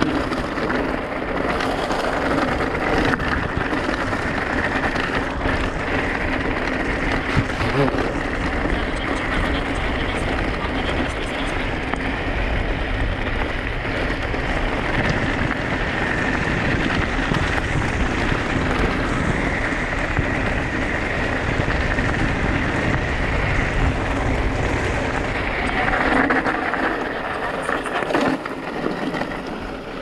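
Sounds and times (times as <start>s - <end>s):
tyres rumbling over gravel: 0.0s - 30.0s
wind buffeting microphone: 0.0s - 30.0s.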